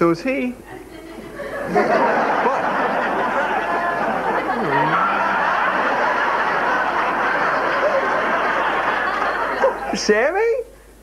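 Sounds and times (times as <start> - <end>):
audience laughing: 0.9 - 10.1.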